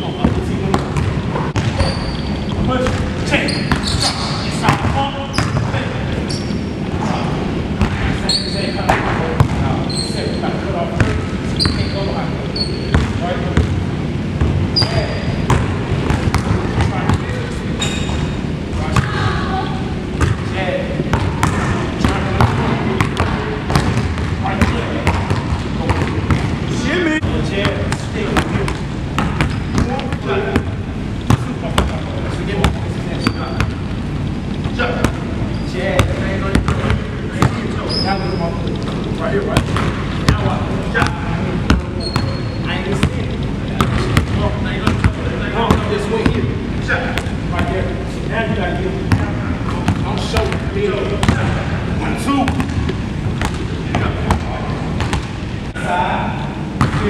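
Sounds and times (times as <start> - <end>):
basketballs bouncing on hardwood: 0.2 - 5.8, 12.9 - 13.8, 14.4 - 17.4, 21.1 - 26.6, 27.6 - 33.8, 35.9 - 37.7, 39.0 - 46.5, 49.1 - 51.6, 52.5 - 55.4, 56.8 - 57.0
short high squeaks: 1.8 - 2.6, 3.4 - 4.4, 6.2 - 6.7, 8.2 - 8.8, 9.8 - 10.5, 11.6 - 12.9, 17.8 - 18.4, 37.8 - 38.6, 42.0 - 42.7.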